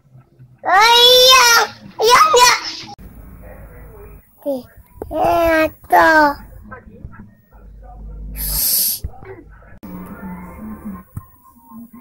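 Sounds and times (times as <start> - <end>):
breathy hissing into microphone: 8.4 - 9.0.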